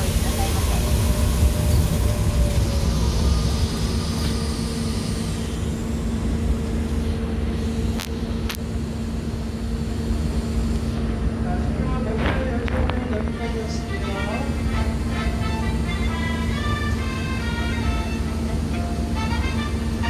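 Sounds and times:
monorail running hum: 0.0 - 20.0.

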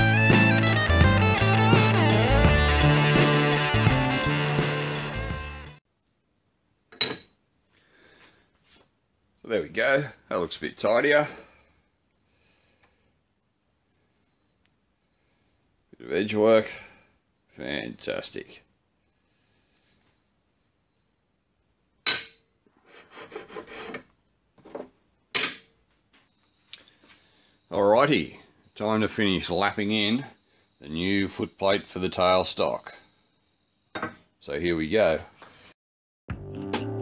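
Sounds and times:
metal plate clinking: 22.0 - 22.6
metal rubbing and scraping: 22.7 - 24.2.

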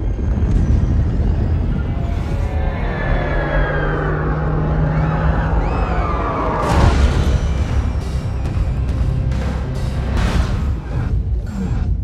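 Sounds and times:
dark tense trailer music: 0.0 - 12.0
heavy boom: 6.6 - 10.8.

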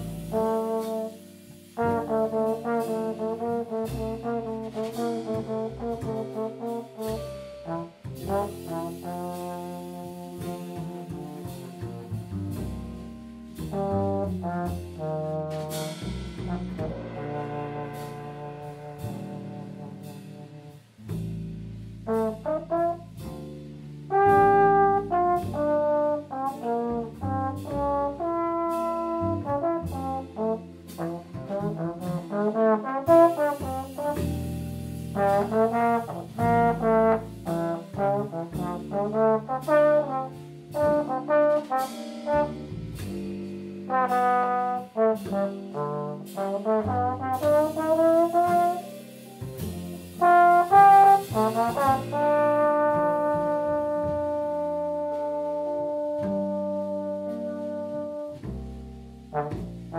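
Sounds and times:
trombone playing jazz: 0.0 - 59.9
upright bass: 0.0 - 59.9.

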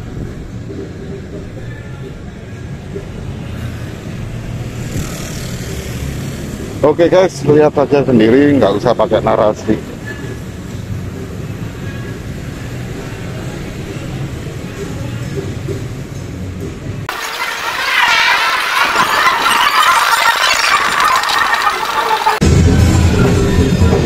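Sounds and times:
motorbikes and cars rumbling: 0.0 - 17.0
music track with drums: 22.4 - 24.0.

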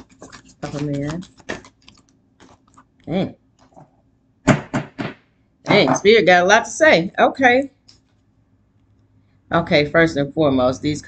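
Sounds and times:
cards being shuffled: 0.0 - 3.8.

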